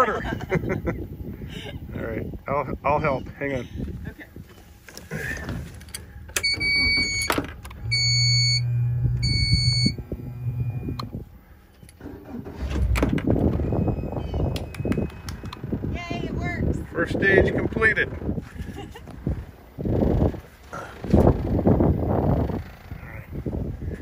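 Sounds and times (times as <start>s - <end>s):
rough low engine rumble: 0.0s - 24.0s
low hum: 5.0s - 17.0s
warning horn beeping: 6.3s - 11.2s, 13.5s - 15.7s.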